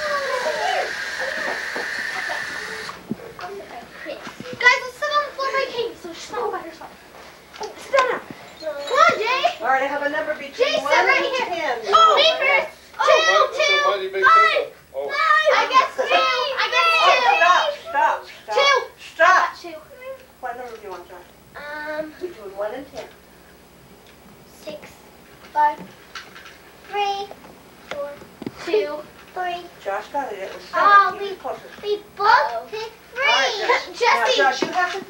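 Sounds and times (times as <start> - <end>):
children's voices: 0.0 - 7.0, 7.6 - 9.7, 10.6 - 20.3, 30.7 - 35.0
steady hiss: 0.0 - 8.6.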